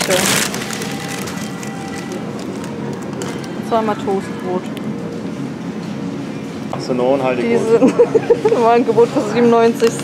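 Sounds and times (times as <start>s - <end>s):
shopping cart rattling: 0.0s - 2.7s.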